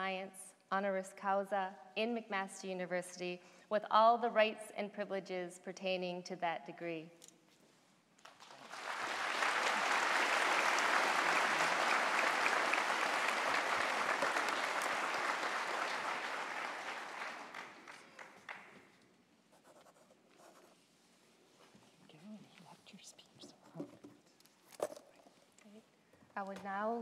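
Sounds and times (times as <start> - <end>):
audience applause: 8.3 - 18.8.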